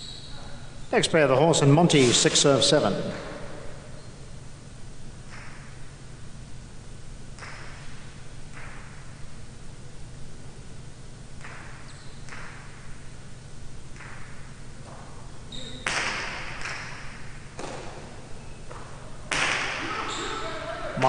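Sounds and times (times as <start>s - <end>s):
ball striking court wall: 7.4s - 9.1s, 11.4s - 12.9s, 15.8s - 20.0s.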